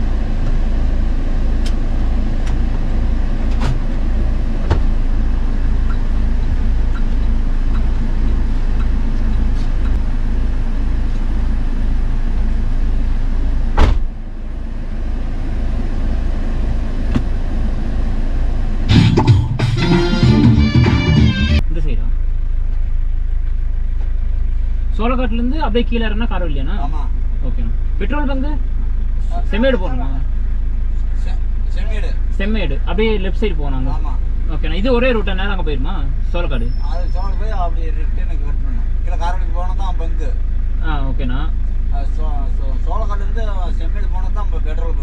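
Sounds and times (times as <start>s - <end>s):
car cabin engine rumble: 0.0s - 45.0s
background music: 18.9s - 21.6s
voices talking: 25.2s - 45.0s.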